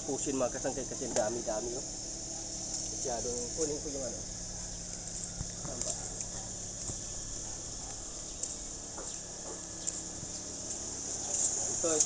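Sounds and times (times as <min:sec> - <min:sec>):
insect trilling: 0:00.0 - 0:12.0.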